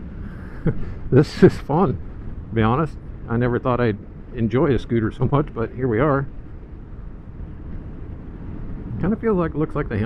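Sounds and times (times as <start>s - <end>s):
road noise: 0.0s - 10.0s
wind: 0.0s - 10.0s.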